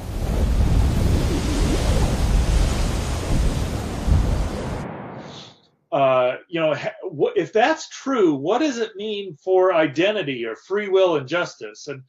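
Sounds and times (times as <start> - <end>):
wind buffeting microphone: 0.0 - 5.4.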